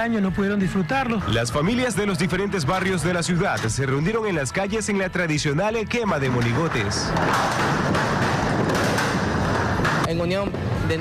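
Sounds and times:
fire burning with rushing noise: 0:00.0 - 0:11.0
fire popping: 0:00.8 - 0:11.0.

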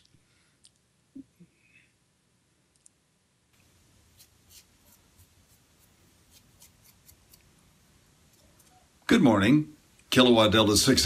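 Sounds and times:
razor scraping stubble: 0:04.1 - 0:07.5.

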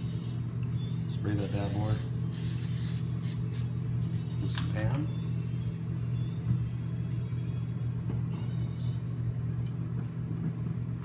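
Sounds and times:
microwave oven humming: 0:00.0 - 0:11.0.

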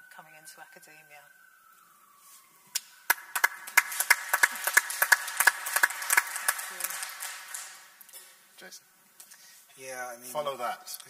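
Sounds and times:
people clapping: 0:02.7 - 0:08.0.

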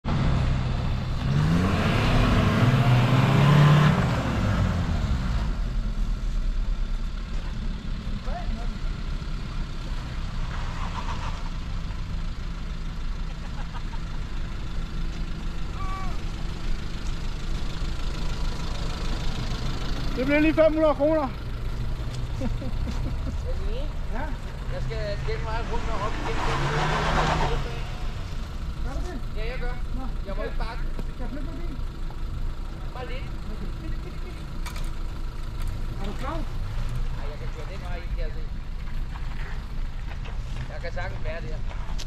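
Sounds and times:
engines idling with low hum: 0:00.0 - 0:42.0
engine revving hard: 0:01.2 - 0:05.5, 0:24.8 - 0:28.3.

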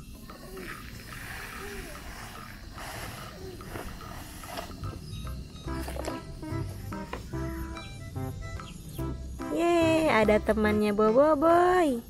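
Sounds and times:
sand pouring off plastic: 0:00.6 - 0:05.0
background music: 0:01.6 - 0:12.0.

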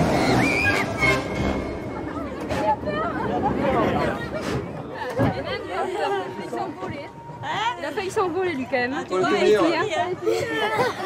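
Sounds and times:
people chattering and calling: 0:00.0 - 0:11.0.

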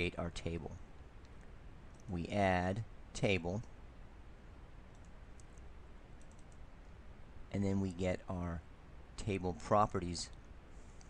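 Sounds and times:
low room hum: 0:00.0 - 0:11.0
computer mouse clicks: 0:04.9 - 0:06.6.

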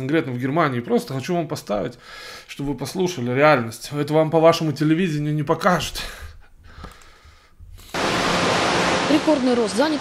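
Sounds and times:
loud steady hiss: 0:07.9 - 0:10.0.

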